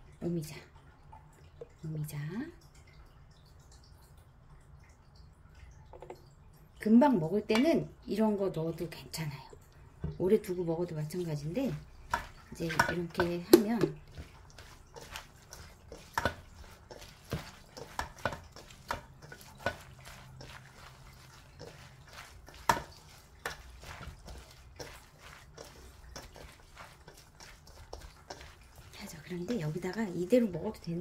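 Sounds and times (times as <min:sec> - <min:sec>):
wet food squelching in bowl: 0:09.5 - 0:31.0.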